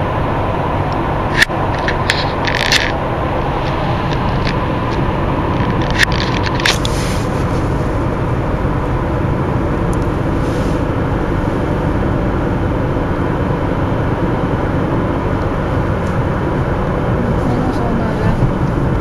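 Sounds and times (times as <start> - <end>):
road and engine noise in car: 0.0 - 19.0.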